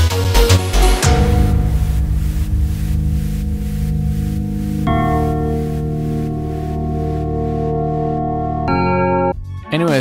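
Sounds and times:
sustained synth chord: 0:00.4 - 0:09.4
fluttering low rumble: 0:01.1 - 0:08.4.

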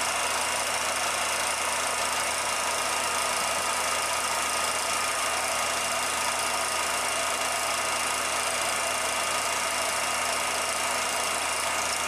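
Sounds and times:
film projector whirring: 0:00.0 - 0:12.0.

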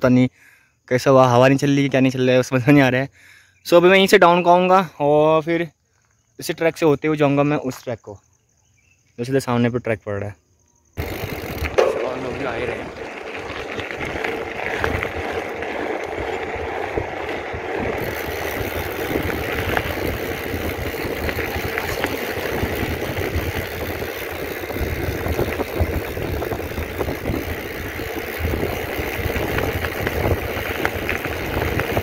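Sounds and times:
bike clicks and rattles: 0:11.0 - 0:32.0
bike tyres rolling on gravel: 0:11.0 - 0:32.0
wind buffeting microphone: 0:11.0 - 0:32.0.

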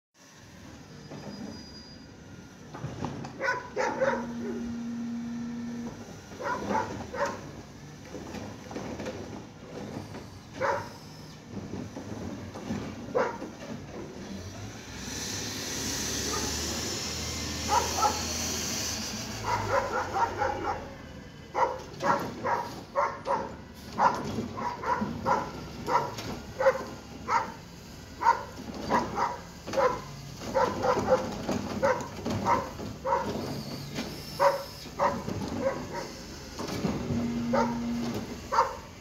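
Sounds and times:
garbage truck engine: 0:00.2 - 0:39.0
dog barking: 0:03.4 - 0:04.7, 0:06.4 - 0:07.5, 0:10.6 - 0:11.0, 0:13.1 - 0:13.5, 0:16.3 - 0:16.6, 0:17.7 - 0:18.3, 0:19.4 - 0:27.6, 0:28.2 - 0:33.4, 0:34.4 - 0:36.2, 0:37.5 - 0:38.9.

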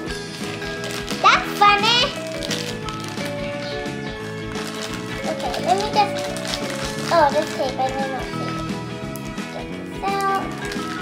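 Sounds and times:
music with trotting beat: 0:00.0 - 0:11.0.

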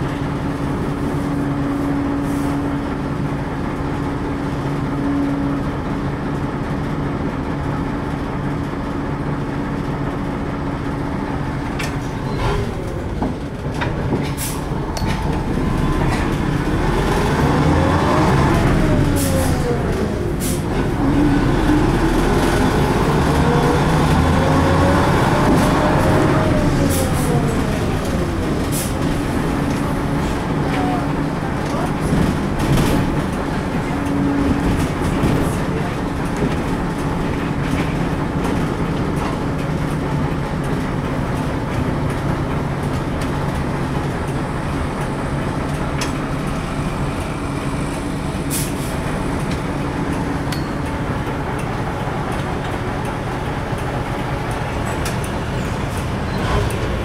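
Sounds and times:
bus engine whine: 0:00.0 - 0:57.0
bus interior hum: 0:00.0 - 0:57.0.

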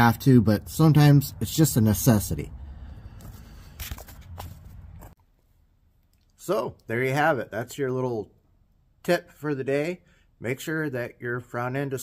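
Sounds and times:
camera handling rumble: 0:03.2 - 0:05.2.

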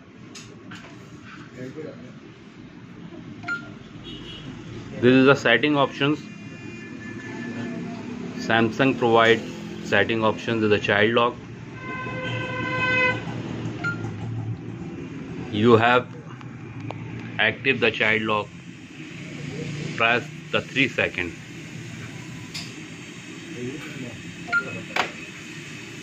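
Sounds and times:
control panel beep: 0:03.4 - 0:03.8, 0:13.8 - 0:14.2, 0:24.5 - 0:25.3.

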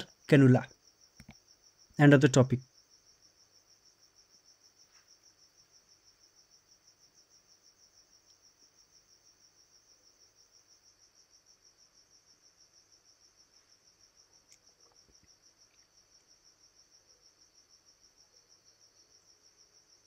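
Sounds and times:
faint cricket chirping: 0:00.0 - 0:20.0.

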